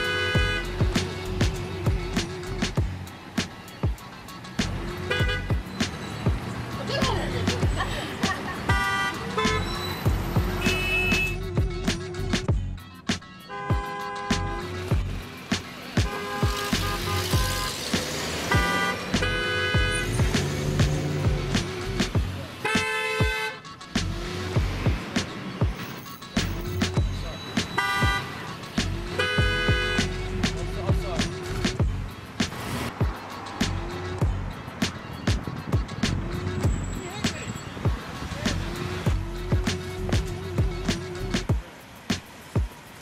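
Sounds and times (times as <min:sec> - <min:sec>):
car horn honking: 0:00.0 - 0:01.2, 0:04.8 - 0:06.2, 0:07.8 - 0:11.6, 0:13.3 - 0:15.0, 0:15.9 - 0:20.5, 0:22.5 - 0:23.9, 0:25.8 - 0:30.3
background music with steady beat: 0:00.0 - 0:43.0.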